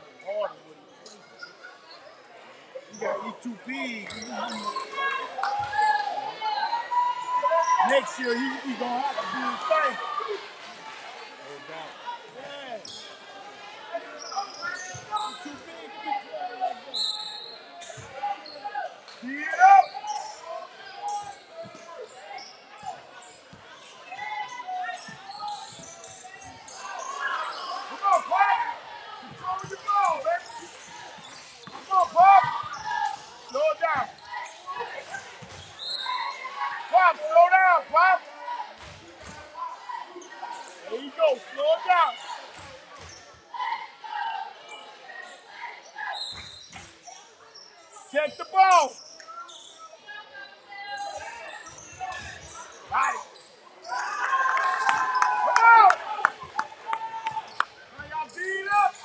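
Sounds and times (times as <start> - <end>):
sneakers squeaking: 3.8 - 6.7, 7.3 - 9.4, 12.8 - 13.2, 14.1 - 15.6, 21.0 - 27.9, 29.2 - 36.5, 46.1 - 49.9.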